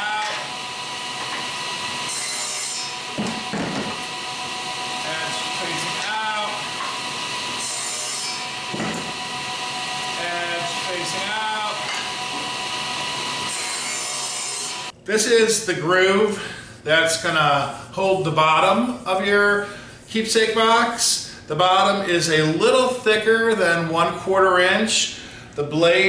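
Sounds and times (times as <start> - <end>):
table saw cutting wood: 0.0 - 15.0.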